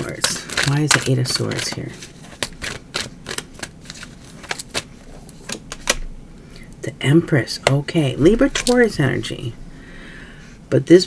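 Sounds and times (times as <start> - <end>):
cards being shuffled: 0.0 - 6.0, 8.4 - 9.0.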